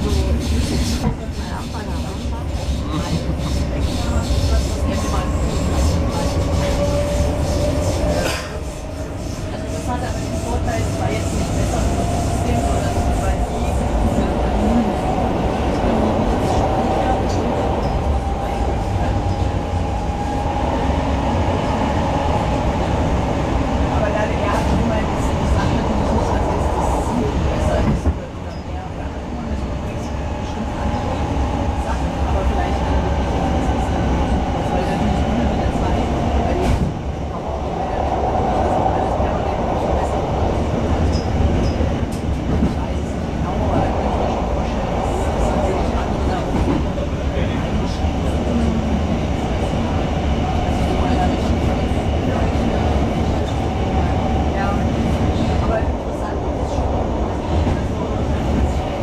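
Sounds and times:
train wheels rumbling on rail: 0:00.0 - 0:59.0.

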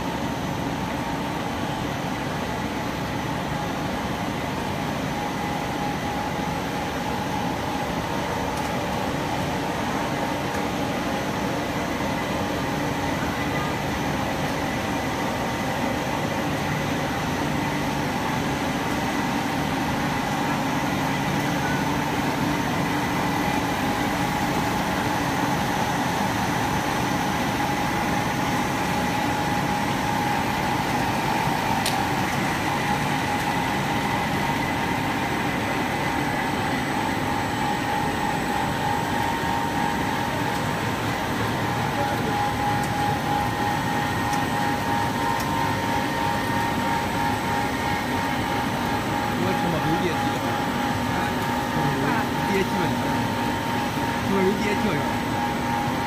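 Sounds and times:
machinery humming with steady tones: 0:00.0 - 0:56.0.

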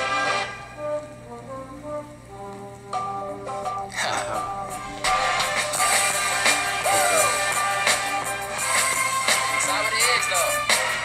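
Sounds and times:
rap song: 0:03.9 - 0:11.0.

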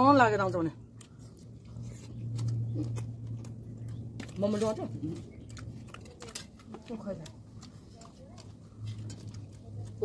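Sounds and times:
chewing mouth sounds: 0:00.8 - 0:10.0.

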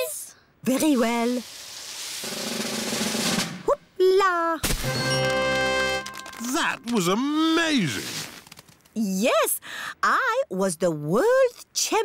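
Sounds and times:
snare drum roll: 0:02.2 - 0:03.6.

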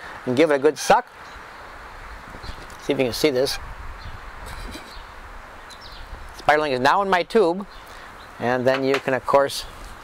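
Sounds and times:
outdoor background noise: 0:00.0 - 0:10.0
faint bird chirp: 0:01.2 - 0:06.4, 0:07.6 - 0:08.6.

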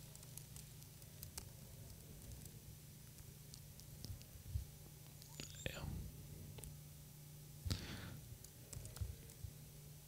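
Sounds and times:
steady low hum: 0:00.0 - 0:10.0
faint whispered voice: 0:05.3 - 0:06.1.

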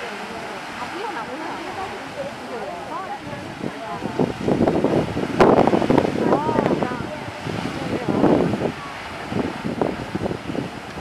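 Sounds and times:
geyser water rushing and splashing: 0:00.0 - 0:11.0.

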